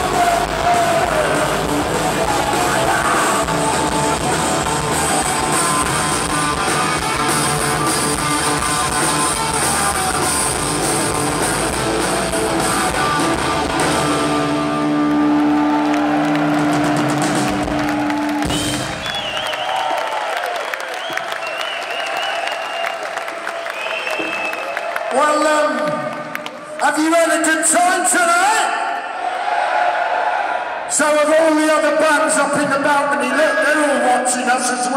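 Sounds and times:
punk rock band playing live: 0.0 - 19.0
crowd cheering and whistling: 0.0 - 26.8.

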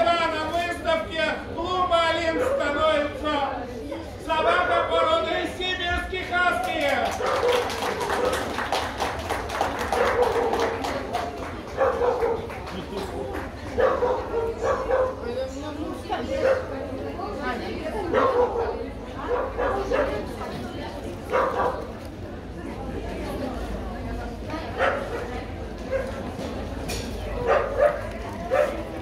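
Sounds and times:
dog barking: 7.2 - 7.7, 9.9 - 10.7, 11.8 - 12.5, 13.8 - 15.2, 16.4 - 16.7, 18.1 - 20.2, 21.3 - 21.8, 24.8 - 25.3, 27.4 - 28.8
people talking: 9.6 - 29.0.

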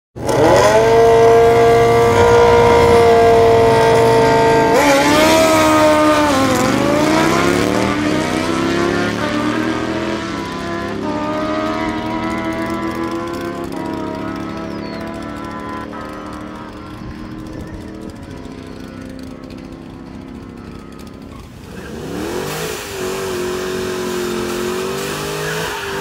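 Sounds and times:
car engine revving: 0.2 - 26.0.

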